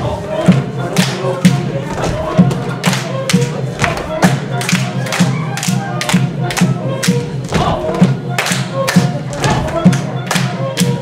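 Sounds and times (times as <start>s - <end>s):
folk dance music: 0.0s - 11.0s.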